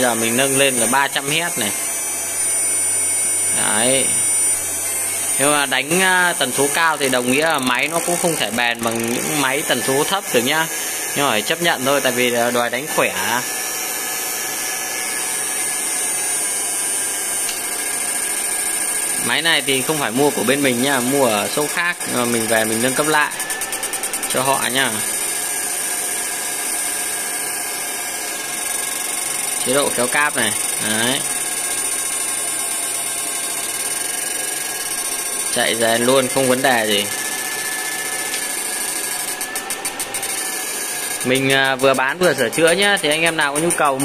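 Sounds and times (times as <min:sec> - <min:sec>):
cooling fans running: 0:00.0 - 0:44.0
thin high-pitched whine: 0:00.0 - 0:44.0.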